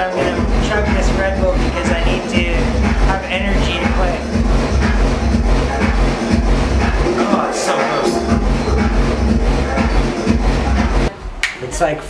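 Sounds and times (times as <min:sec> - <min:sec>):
loud electronic dance music: 0:00.0 - 0:11.2.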